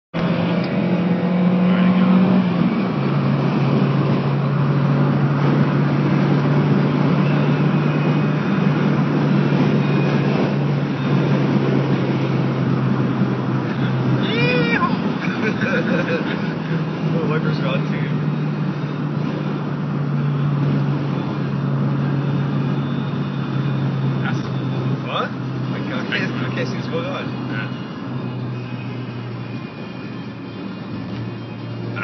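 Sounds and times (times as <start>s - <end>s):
car engine from inside cabin: 0.2s - 32.0s.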